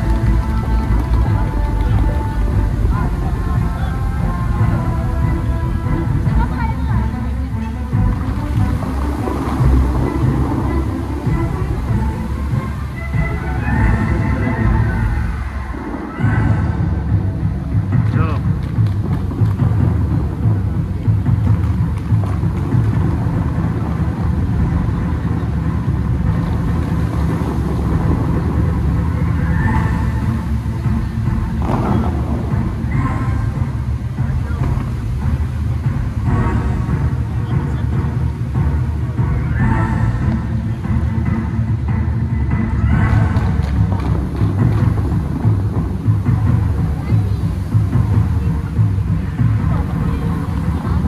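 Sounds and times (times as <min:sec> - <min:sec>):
voices: 0:00.0 - 0:18.5, 0:46.2 - 0:51.0
low rumble: 0:00.0 - 0:51.0
music over loudspeakers: 0:00.0 - 0:51.0.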